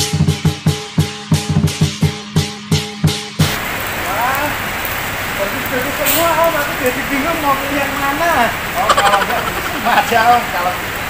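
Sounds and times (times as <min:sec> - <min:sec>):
rain falling: 0:03.4 - 0:11.0.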